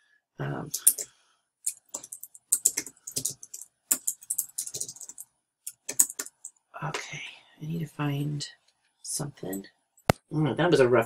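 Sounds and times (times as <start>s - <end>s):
computer keyboard typing: 0.7s - 1.1s, 1.7s - 6.6s.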